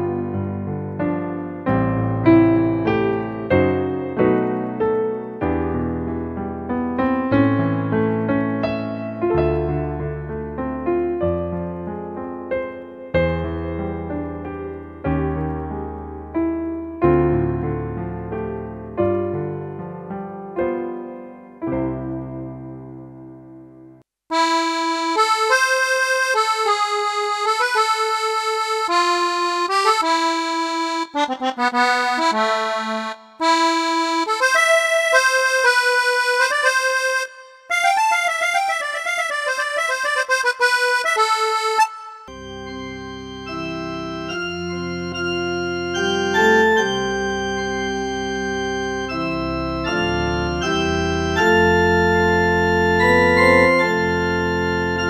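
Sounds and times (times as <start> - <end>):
digital piano melody: 0.0 - 55.0.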